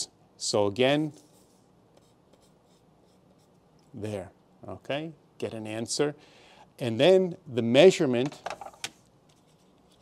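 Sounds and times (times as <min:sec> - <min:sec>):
pencil scratching on paper: 0:01.2 - 0:03.6.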